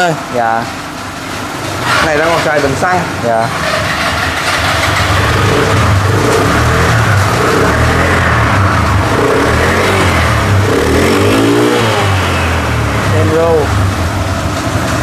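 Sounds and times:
scooter engine revving: 0.7 - 15.0.

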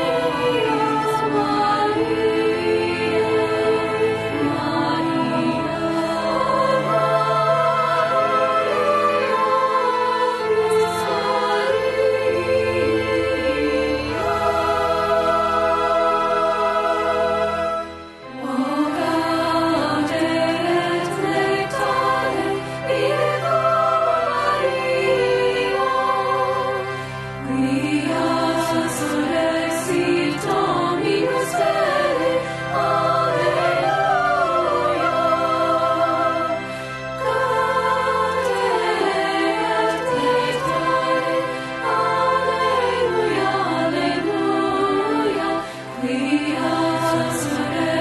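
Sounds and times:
choir holding sustained notes: 0.0 - 48.0.

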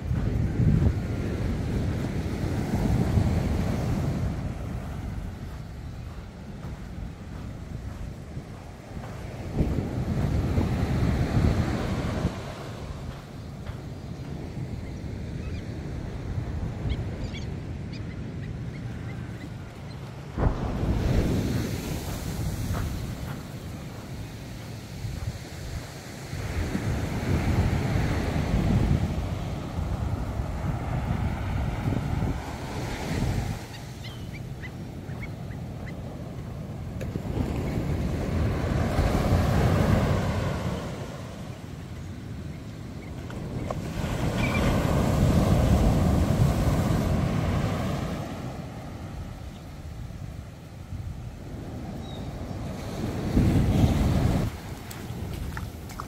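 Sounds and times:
ocean surf breaking on beach: 0.0 - 56.0.

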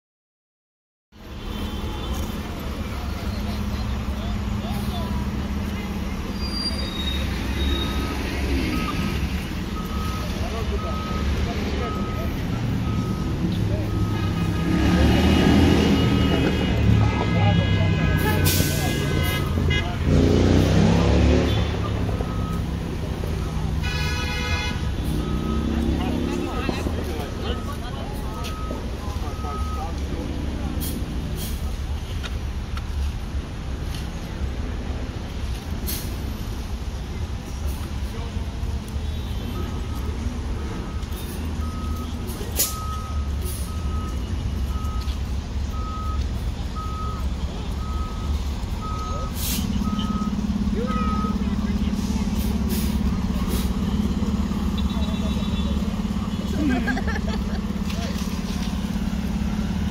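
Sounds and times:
diesel engine running: 2.2 - 24.1, 24.8 - 59.9
backup alarm beeping: 9.7 - 14.4, 46.8 - 51.5
air brakes hissing: 49.2 - 49.8.

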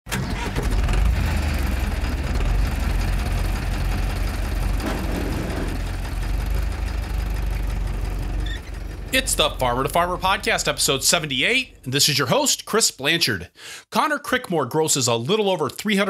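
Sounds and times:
engine low rumble: 0.1 - 12.4.

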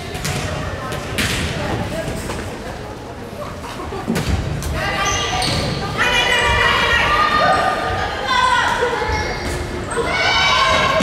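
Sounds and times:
girls shouting in gym: 4.8 - 11.0.

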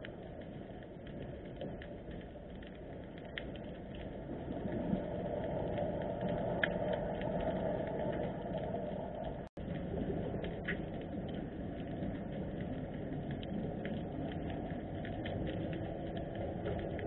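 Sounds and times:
underwater clicks and crackles: 0.0 - 17.0
underwater rumble: 0.0 - 17.0.

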